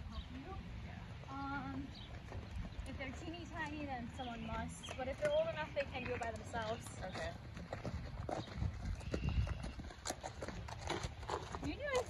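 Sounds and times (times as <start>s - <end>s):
horse hooves clip-clopping on dirt: 1.3s - 12.0s.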